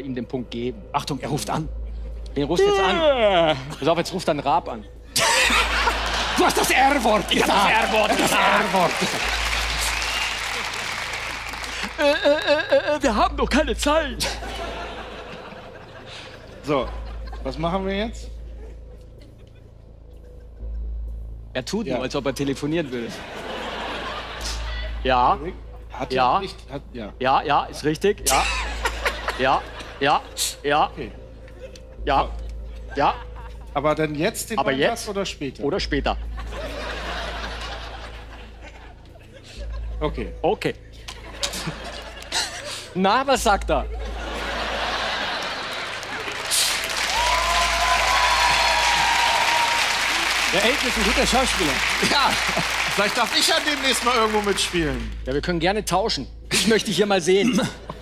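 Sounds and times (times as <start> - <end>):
audience applauding: 5.2 - 12.9, 44.4 - 55.2
audience laughing: 5.2 - 13.2, 14.2 - 20.8, 22.8 - 25.0, 28.3 - 30.6, 36.2 - 40.3, 41.1 - 43.0, 43.8 - 54.7.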